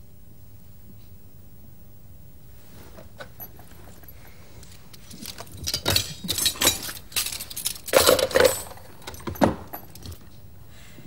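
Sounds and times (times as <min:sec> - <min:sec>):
cutlery and china clinking: 0:05.0 - 0:10.2.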